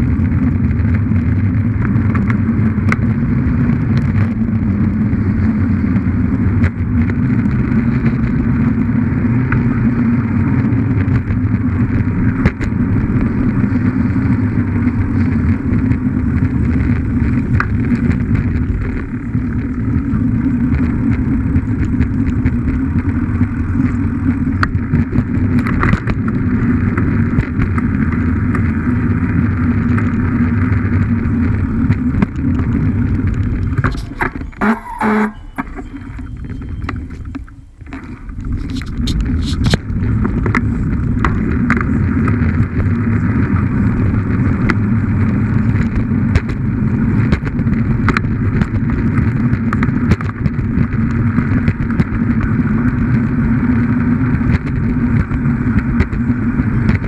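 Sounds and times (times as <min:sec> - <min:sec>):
bike tyres rumbling on pavement: 0:00.0 - 0:57.0.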